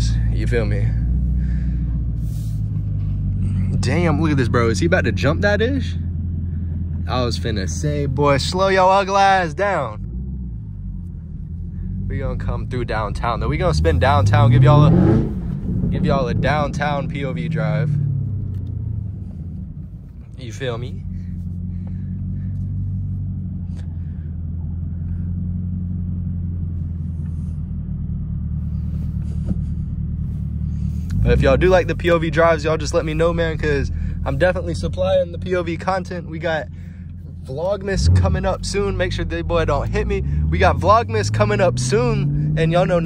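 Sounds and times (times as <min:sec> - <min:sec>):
car engine rumble from inside: 0:00.0 - 0:43.0.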